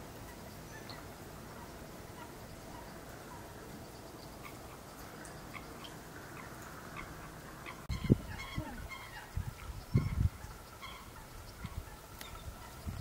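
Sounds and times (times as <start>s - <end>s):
low honking bird calls: 5.5s - 13.0s.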